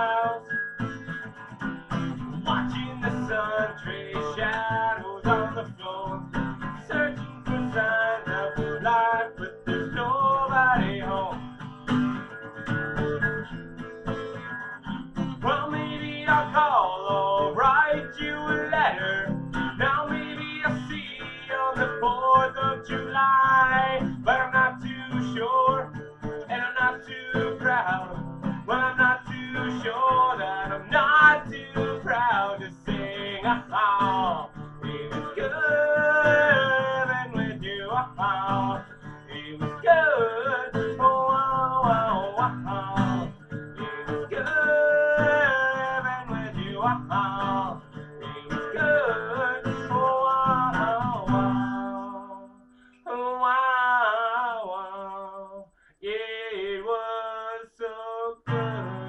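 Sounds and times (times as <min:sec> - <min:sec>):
man singing: 0:00.0 - 0:01.6, 0:02.3 - 0:11.7, 0:14.6 - 0:59.0
acoustic guitar strumming: 0:00.0 - 0:56.5, 0:58.4 - 0:59.0.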